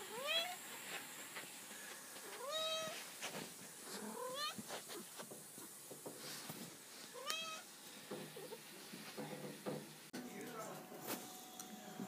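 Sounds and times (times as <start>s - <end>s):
cat meowing: 2.3s - 3.0s, 4.0s - 4.6s, 7.2s - 7.7s.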